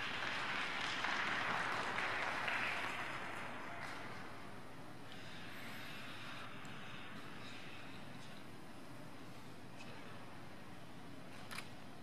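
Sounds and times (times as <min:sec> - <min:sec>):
spectators applauding: 0:00.0 - 0:04.4.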